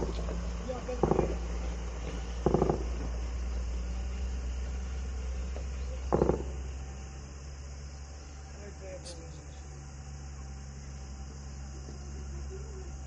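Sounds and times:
steady low rumble: 0.0s - 13.0s
distant automatic gunfire: 1.0s - 1.4s, 2.4s - 3.2s, 6.1s - 6.6s.

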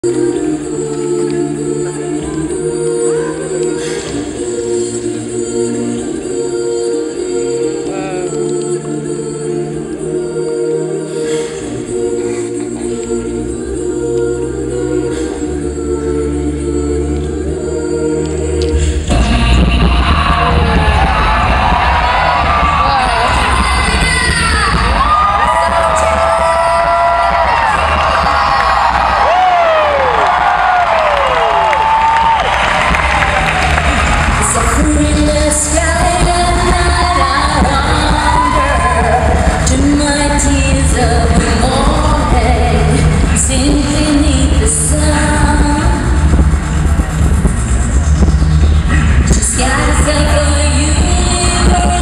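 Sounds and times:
a cappella group singing: 0.0s - 52.0s.

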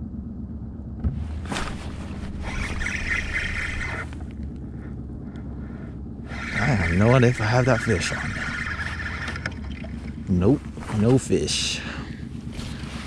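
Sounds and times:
boat motor humming: 0.0s - 13.0s
hissing rustle: 1.3s - 4.4s.

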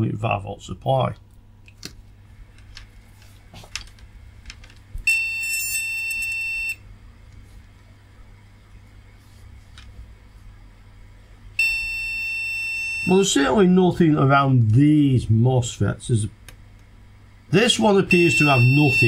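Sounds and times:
long electronic beep: 5.1s - 6.8s, 11.6s - 13.6s, 18.0s - 19.0s.

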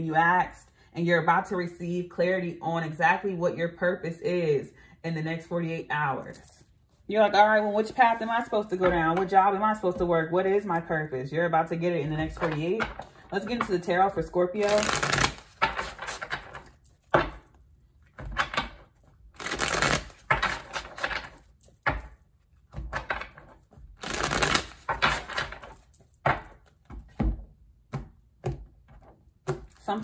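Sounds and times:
cards being shuffled: 14.6s - 17.3s, 18.4s - 22.1s, 22.9s - 26.8s.

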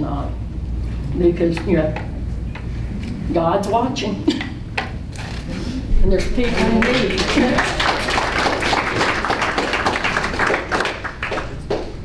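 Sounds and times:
audience clapping: 6.4s - 12.0s.

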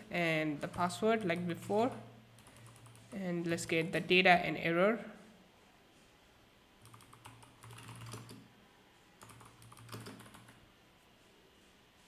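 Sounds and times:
faint typing on keyboard: 0.6s - 3.2s, 6.8s - 8.5s, 9.2s - 10.6s.

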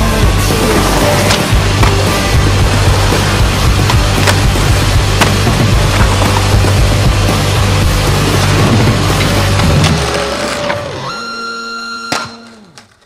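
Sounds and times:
loud music with heavy bass: 0.0s - 10.2s
skateboard rolling on concrete: 0.0s - 11.0s
skateboard clacks: 0.6s - 10.8s.

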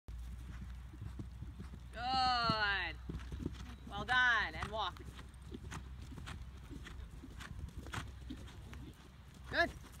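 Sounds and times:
horse hoofbeats on grass: 0.1s - 10.0s.

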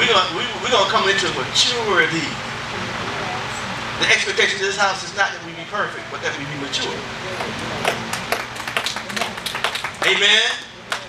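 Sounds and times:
scattered hand clapping: 7.4s - 11.0s.

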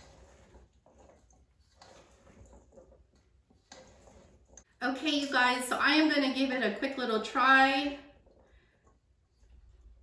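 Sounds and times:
spoon stirring in metal bowl: 0.0s - 6.5s.

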